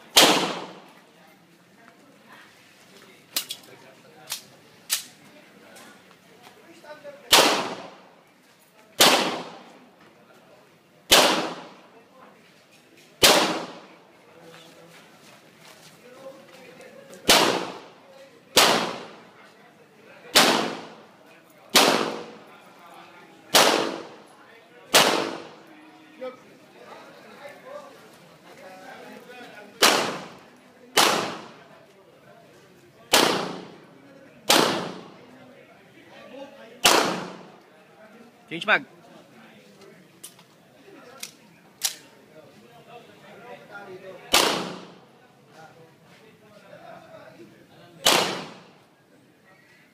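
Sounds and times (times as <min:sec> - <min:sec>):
handgun shots with echo: 0:00.1 - 0:00.8, 0:07.3 - 0:07.9, 0:09.0 - 0:09.6, 0:11.1 - 0:11.8, 0:13.2 - 0:13.8, 0:17.3 - 0:17.8, 0:18.6 - 0:19.2, 0:20.3 - 0:21.0, 0:21.7 - 0:22.4, 0:23.5 - 0:24.2, 0:24.9 - 0:25.6, 0:29.8 - 0:30.4, 0:31.0 - 0:31.6, 0:33.1 - 0:33.8, 0:34.5 - 0:35.1, 0:36.8 - 0:37.5, 0:44.3 - 0:45.0, 0:48.0 - 0:48.7.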